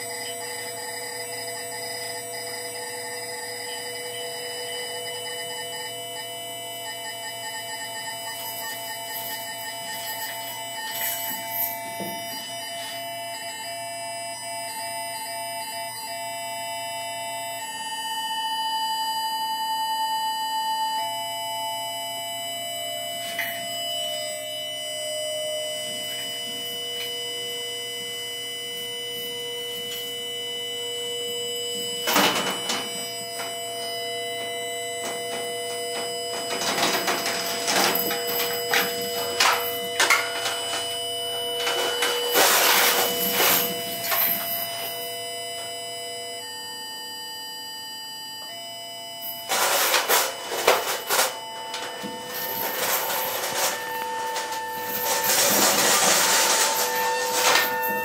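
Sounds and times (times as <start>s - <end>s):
electronic sine tones: 0.0s - 58.0s
clattering percussion: 34.4s - 45.0s, 49.5s - 58.0s.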